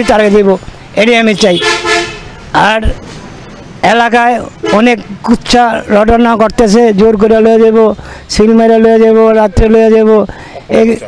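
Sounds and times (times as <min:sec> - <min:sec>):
man speaking: 0:00.0 - 0:01.8, 0:02.5 - 0:03.0, 0:03.8 - 0:11.0
vehicle horn honk: 0:01.4 - 0:02.4, 0:04.6 - 0:04.9.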